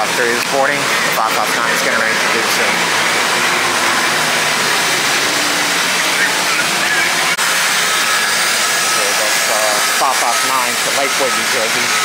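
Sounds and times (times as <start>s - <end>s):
buses idling: 0.0s - 9.5s
voices: 0.0s - 12.0s.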